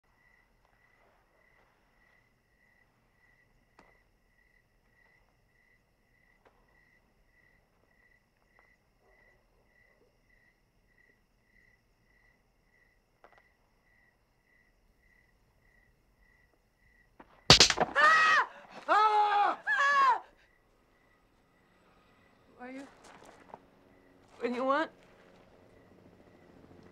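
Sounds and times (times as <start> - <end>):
cricket chirping: 0.0 - 17.9, 20.4 - 22.6, 23.6 - 24.2
sudden sharp bang: 17.5 - 18.0.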